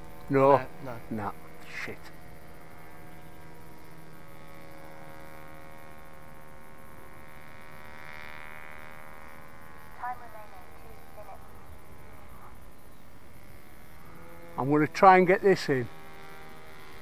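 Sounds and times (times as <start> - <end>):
model airplane motor droning: 0.0 - 17.0.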